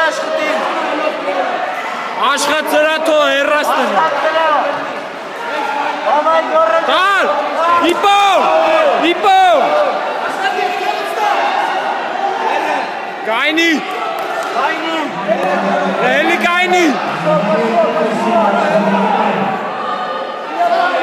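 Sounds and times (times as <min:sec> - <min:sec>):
crowd murmuring: 0:00.0 - 0:21.0
spectators shouting encouragement: 0:00.0 - 0:21.0.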